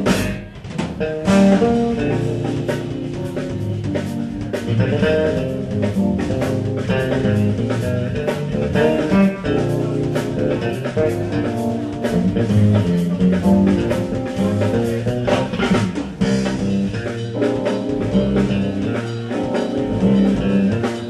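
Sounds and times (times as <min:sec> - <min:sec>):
smooth jazz trio playing: 0:00.0 - 0:21.0.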